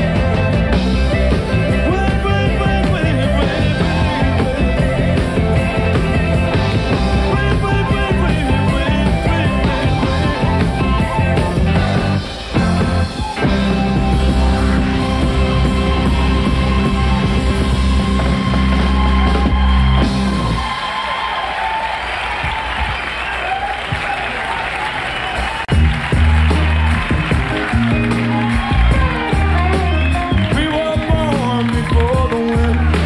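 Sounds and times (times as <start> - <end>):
live rock band playing: 0.0 - 20.9, 25.6 - 33.0
audience applause: 3.4 - 33.0.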